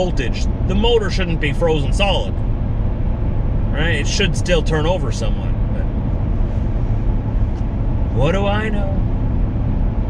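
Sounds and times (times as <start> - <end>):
truck engine and road drone: 0.0 - 10.0.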